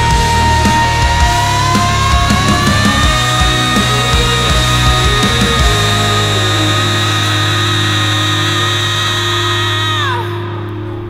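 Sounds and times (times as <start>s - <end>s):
high sustained tones sliding down: 0.0s - 11.0s
low bass note: 0.0s - 11.0s
rock band closing chord: 0.0s - 11.0s.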